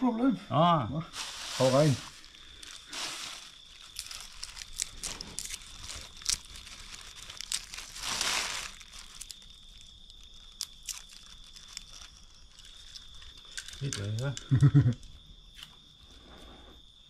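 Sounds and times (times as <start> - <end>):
plastic bag rustling: 1.1 - 14.1.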